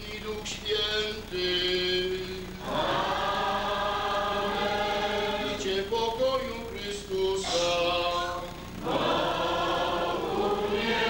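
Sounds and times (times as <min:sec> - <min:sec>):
congregation singing a hymn: 0:00.0 - 0:11.0.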